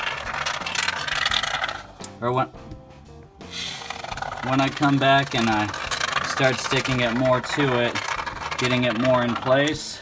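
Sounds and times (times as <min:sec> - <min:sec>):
expanding foam can spraying: 0:00.0 - 0:01.9, 0:03.4 - 0:10.0.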